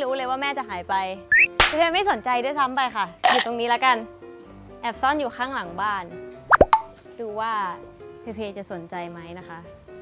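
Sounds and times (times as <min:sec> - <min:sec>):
light background music: 0:00.0 - 0:10.0
quick plop: 0:06.5 - 0:07.0.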